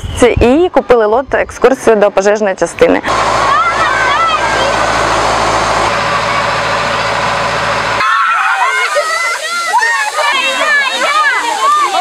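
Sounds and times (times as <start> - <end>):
pump engine droning: 2.6 - 12.0
hissing foam jet spraying: 3.1 - 12.0
children's high-pitched voices: 3.5 - 4.9, 8.0 - 12.0.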